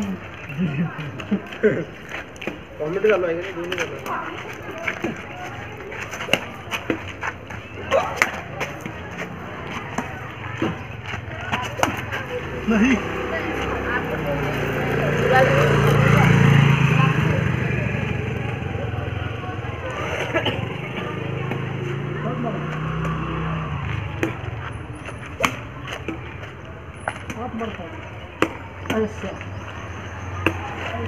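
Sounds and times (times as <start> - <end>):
motor scooter passing: 0.0 - 31.0
badminton rackets hitting shuttlecock: 5.9 - 7.1, 11.5 - 12.3, 22.9 - 29.2.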